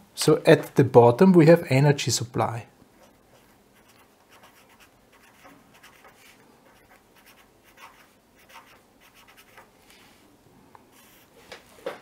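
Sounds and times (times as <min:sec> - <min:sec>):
pen scratching on paper: 0:03.0 - 0:09.7.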